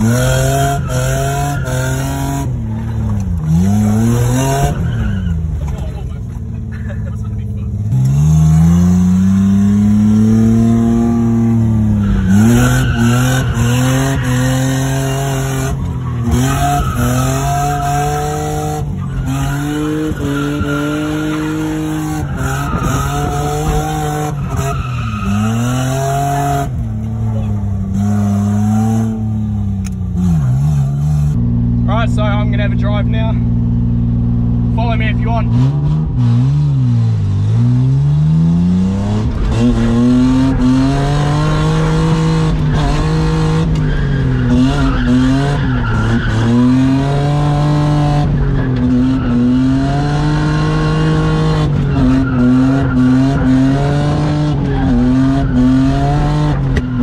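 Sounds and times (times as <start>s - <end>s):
car engine revving: 0.0s - 57.0s.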